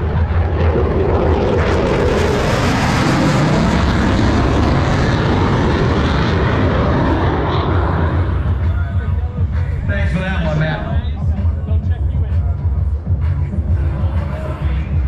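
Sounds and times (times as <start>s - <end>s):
jet passing overhead: 0.0s - 15.0s.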